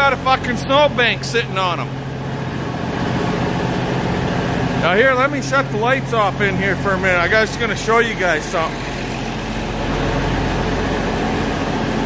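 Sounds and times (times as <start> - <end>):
tractor engine idling: 0.0 - 12.0.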